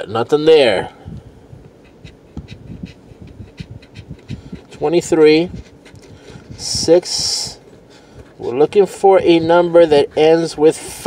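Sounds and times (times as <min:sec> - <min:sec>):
coin scratching lottery ticket: 0:01.8 - 0:05.0, 0:08.4 - 0:11.0.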